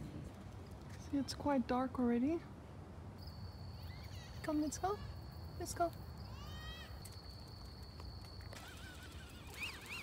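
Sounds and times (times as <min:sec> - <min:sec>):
high-pitched insect trill: 0:03.2 - 0:04.5, 0:05.1 - 0:10.0
faint high animal calls: 0:03.8 - 0:05.1, 0:08.6 - 0:10.0.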